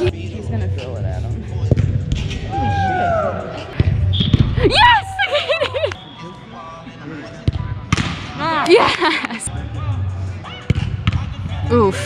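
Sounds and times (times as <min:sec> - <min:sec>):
people shouting and cheering: 0:02.3 - 0:06.0
soccer ball kick thud: 0:07.4 - 0:08.4, 0:10.7 - 0:11.3.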